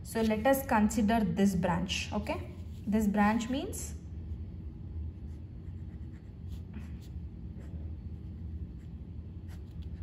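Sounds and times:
low background hum: 0:00.0 - 0:10.0
pen scratching on paper: 0:05.3 - 0:06.7.

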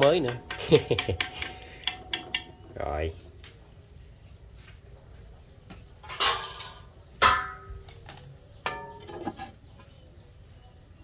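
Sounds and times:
pot lid clanking on pot: 0:08.6 - 0:09.5.

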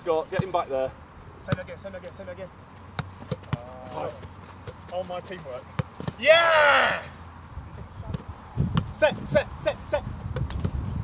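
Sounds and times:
players' voices: 0:00.0 - 0:10.2
football thuds: 0:00.3 - 0:00.6, 0:01.4 - 0:01.8, 0:02.8 - 0:06.4, 0:10.1 - 0:11.0.

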